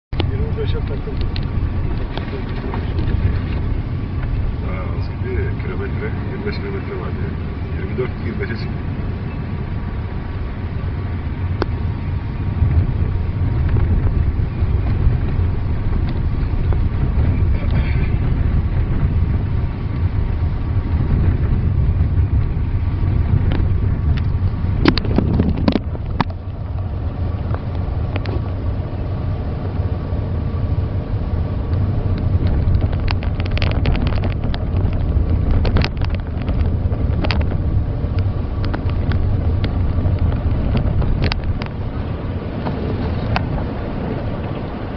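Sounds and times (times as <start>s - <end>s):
engine and tyres rumbling on snow: 0.0s - 44.9s.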